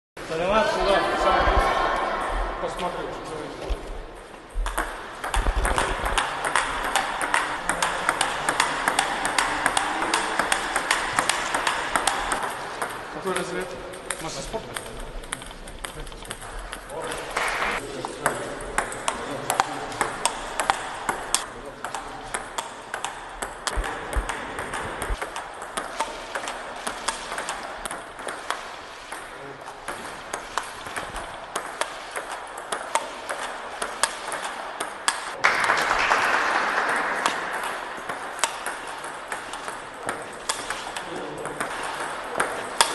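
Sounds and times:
table tennis ball clicking: 4.6 - 35.4, 36.9 - 42.9.

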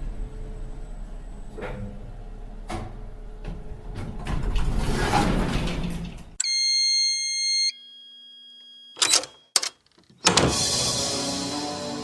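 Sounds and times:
music: 10.3 - 12.0.

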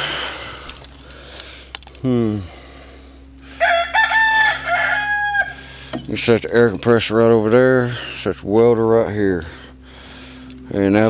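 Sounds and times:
rooster crowing: 3.4 - 5.9.

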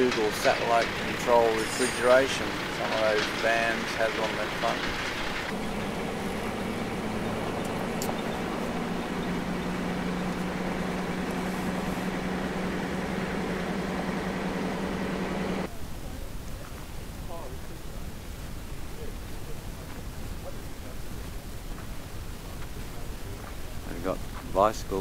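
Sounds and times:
tyre and road noise: 0.0 - 15.7
engine drone inside vehicle: 4.8 - 15.7.

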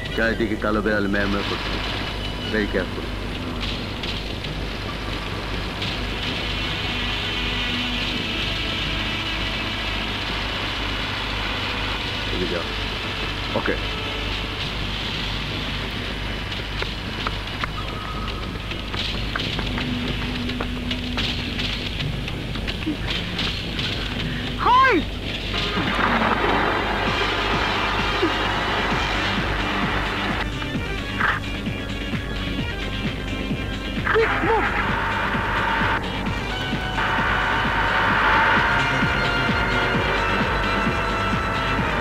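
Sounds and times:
film soundtrack hiss and hum: 0.0 - 42.0.

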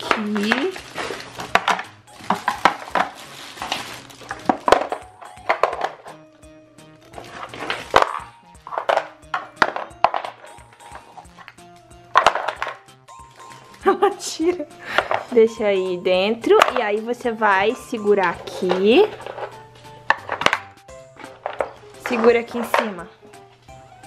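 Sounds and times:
wooden toy blocks clattering: 0.0 - 6.2, 7.2 - 11.5, 12.1 - 12.8, 15.0 - 15.4, 16.5 - 17.0, 18.5 - 23.1
soft background music: 0.0 - 24.0.

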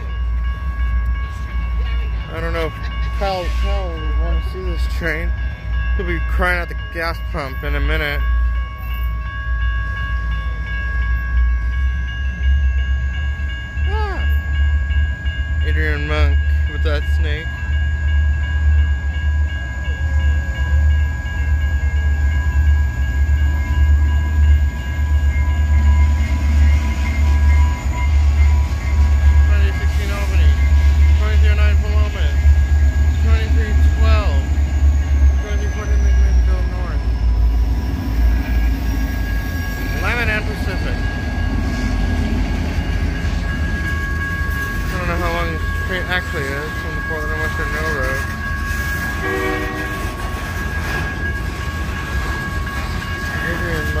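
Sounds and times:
crossing signal bell ringing: 0.0 - 54.0
diesel locomotive engines rumbling: 0.0 - 54.0
train cars rolling: 0.0 - 54.0.

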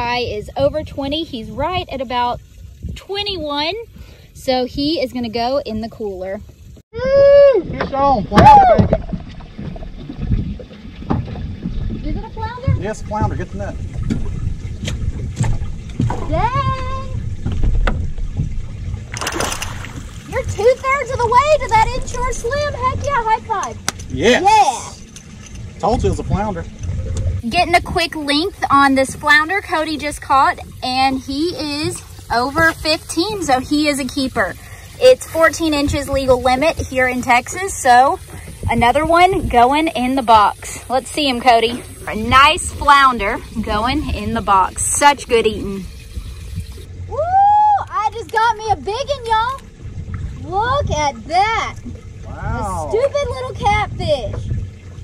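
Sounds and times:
water rumbling around boat: 0.0 - 55.0
wind on microphone: 0.0 - 55.0
woman shouting excited woo: 7.0 - 7.6, 8.4 - 8.9, 47.1 - 48.1
water splash: 7.6 - 28.0.

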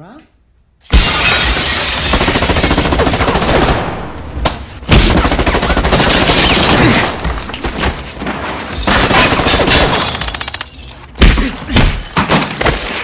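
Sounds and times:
submachine gun automatic fire: 5.0 - 6.8.

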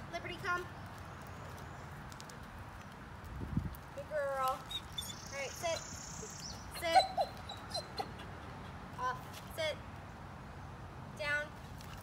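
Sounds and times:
puppy whining: 6.4 - 8.8
puppy yelping: 6.6 - 8.8.

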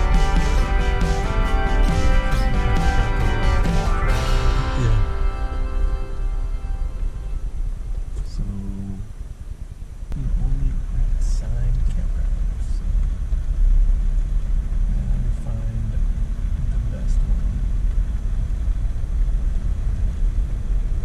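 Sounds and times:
faint voices: 4.5 - 5.2.

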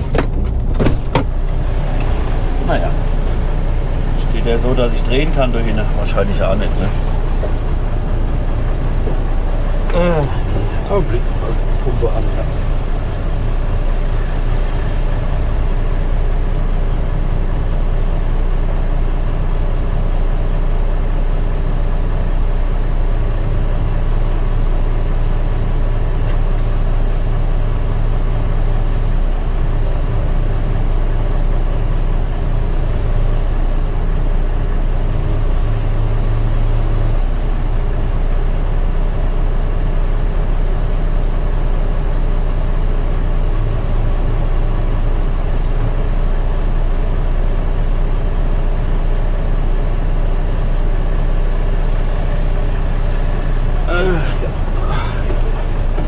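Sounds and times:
hydraulic pump running: 0.0 - 17.2, 50.6 - 56.0
diesel truck engine idling: 0.0 - 56.0.

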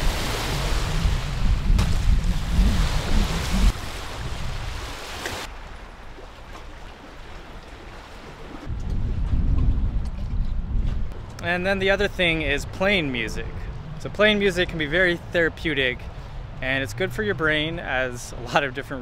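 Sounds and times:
wind buffeting microphone: 0.0 - 5.0, 8.7 - 17.9
choppy lake water: 0.0 - 19.0.

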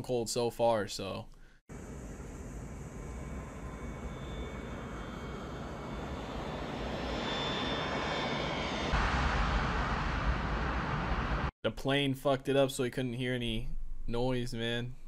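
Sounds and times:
faint high whine: 1.7 - 11.5
jet airliner engine overhead: 1.7 - 11.5.

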